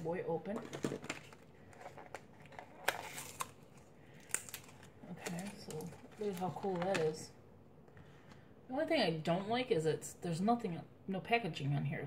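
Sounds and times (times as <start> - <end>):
paper crinkling and rustling: 0.5 - 7.2.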